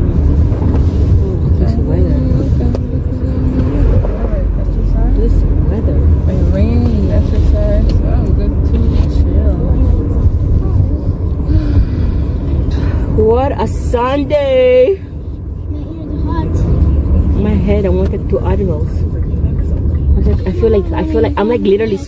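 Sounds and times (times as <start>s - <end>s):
car engine rumble: 0.0s - 22.0s
road noise: 0.0s - 22.0s
person speaking: 20.2s - 22.0s.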